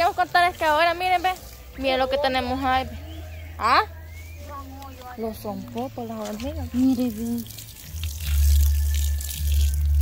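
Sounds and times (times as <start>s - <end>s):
hose water splashing on soil: 4.2s - 10.0s.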